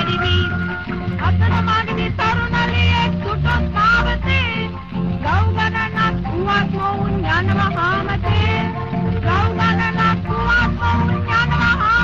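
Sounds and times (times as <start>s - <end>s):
song on a gramophone record: 0.0s - 12.0s.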